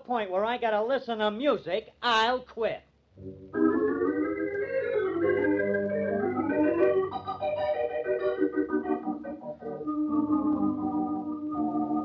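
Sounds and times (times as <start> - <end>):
organ playing sustained chords: 3.2 - 12.0.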